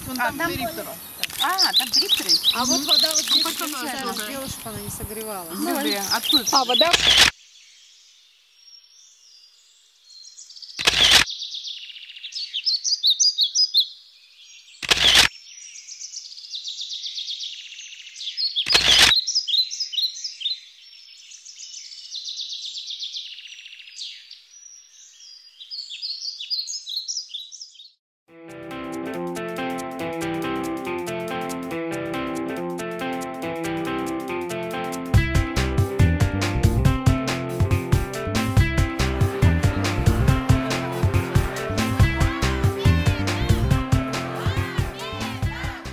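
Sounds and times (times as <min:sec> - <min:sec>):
songbirds chirping and trilling: 0:00.1 - 0:28.0
loud sharp click: 0:06.9 - 0:07.3, 0:10.8 - 0:11.3, 0:14.8 - 0:15.3, 0:18.7 - 0:19.2
music with plucked strings: 0:28.4 - 0:45.9.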